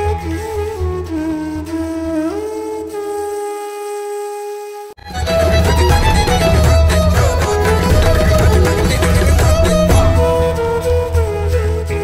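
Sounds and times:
flute long note: 0.0s - 12.0s.

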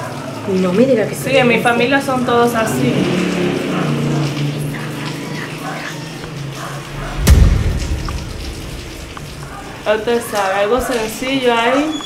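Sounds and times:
heavy thump with deep rumble: 6.9s - 9.8s.

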